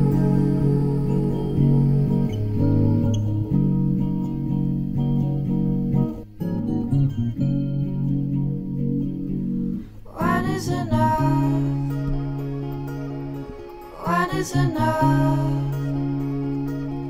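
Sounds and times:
guitar playing sustained chords: 0.0 - 17.0.

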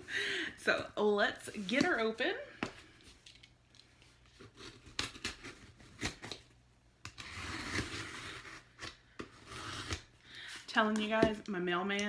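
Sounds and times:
cardboard tearing and scraping: 7.2 - 10.1.

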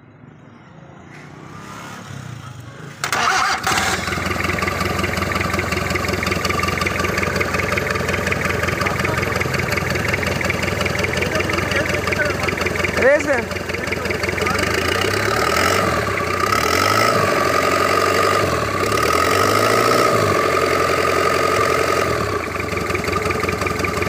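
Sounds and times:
diesel engine starting and idling: 1.4 - 24.0.

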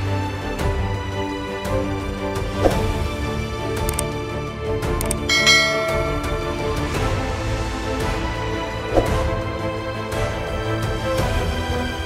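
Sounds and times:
background music: 0.0 - 12.0
bright bell chime: 5.3 - 7.2.

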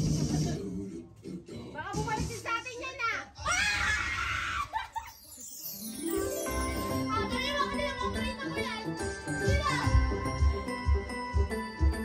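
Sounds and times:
person screaming: 3.4 - 4.8.

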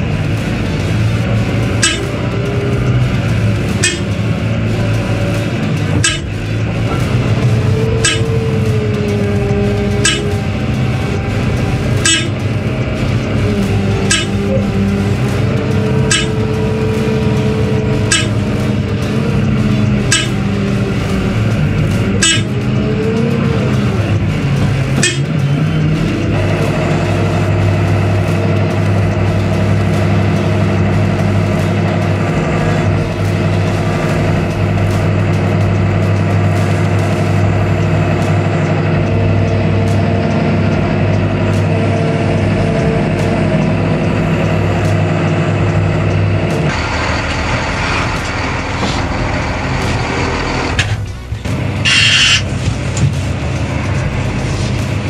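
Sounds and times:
diesel engine running steadily: 0.0 - 55.0.

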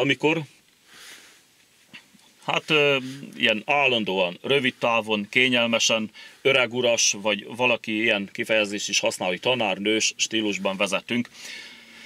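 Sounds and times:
man saying hesitation word: 2.5 - 3.6.

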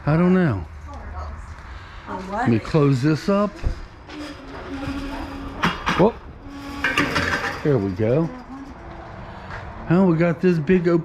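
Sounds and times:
metal gate squeaking: 3.2 - 8.8
metal gate clanks: 3.5 - 8.8.

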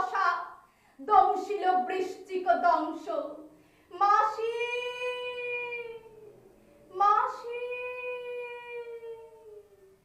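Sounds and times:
woman wailing a long vowel: 7.5 - 9.8.

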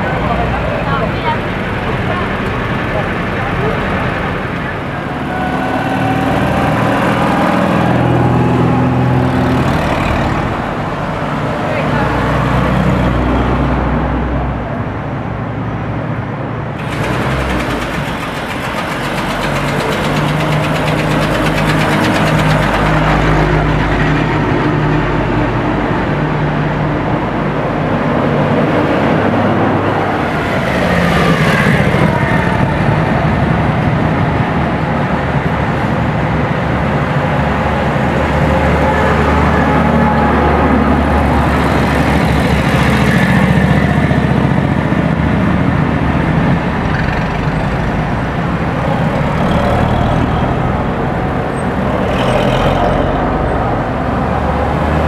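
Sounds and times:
people talking: 0.0 - 7.2, 11.6 - 12.9
military vehicle engines running: 0.0 - 55.0.

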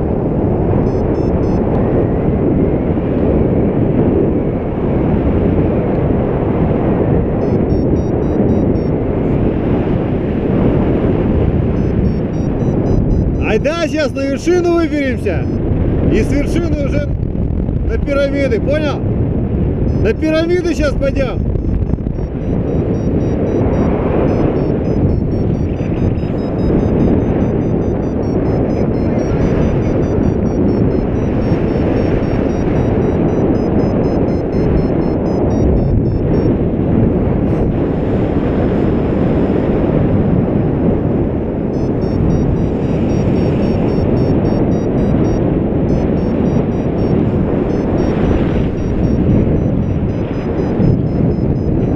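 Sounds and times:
wind buffeting microphone: 0.0 - 51.9.

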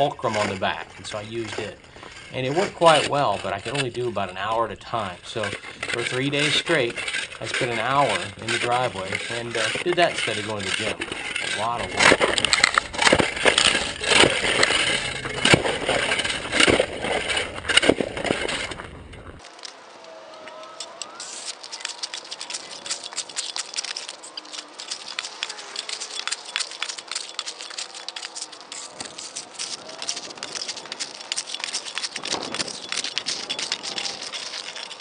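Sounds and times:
ice chunks breaking: 0.0 - 35.0
shovel chipping and scraping ice: 0.0 - 35.0.

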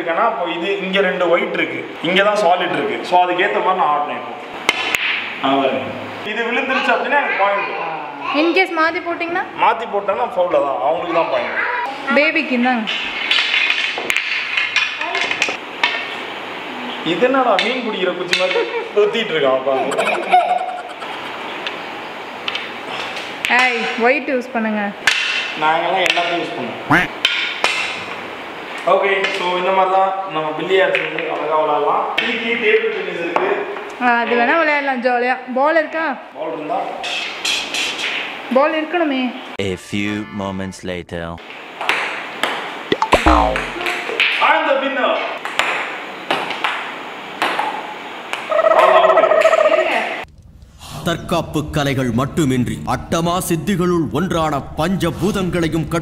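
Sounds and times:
person calling out loudly: 26.9 - 27.1, 39.6 - 41.4, 43.1 - 43.9.

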